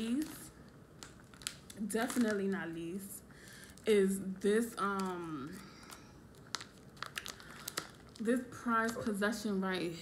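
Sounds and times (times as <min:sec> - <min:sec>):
plastic pouch crinkling: 0:00.0 - 0:03.9, 0:04.7 - 0:09.4.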